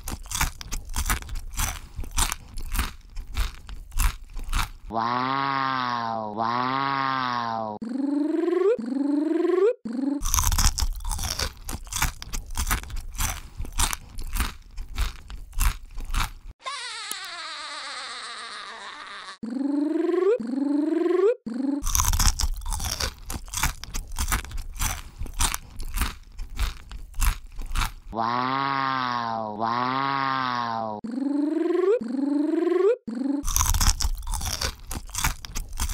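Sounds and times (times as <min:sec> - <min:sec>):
crunchy eating bites: 0:00.0 - 0:07.4, 0:10.2 - 0:16.5, 0:21.8 - 0:30.7, 0:33.4 - 0:35.9.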